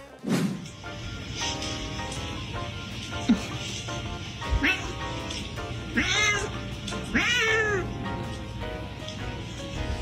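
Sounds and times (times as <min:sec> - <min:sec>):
cat meowing: 0:04.4 - 0:05.2, 0:05.9 - 0:08.0.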